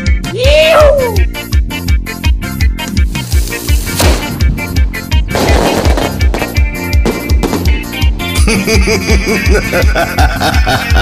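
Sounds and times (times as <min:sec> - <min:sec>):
campaign song with bass beat: 0:01.2 - 0:09.8
sharp crash: 0:03.9 - 0:04.6.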